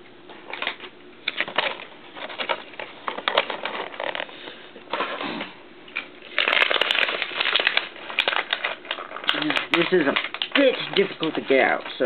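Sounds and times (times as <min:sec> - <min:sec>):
plastic packaging crackling: 0:00.5 - 0:05.2, 0:05.9 - 0:12.0.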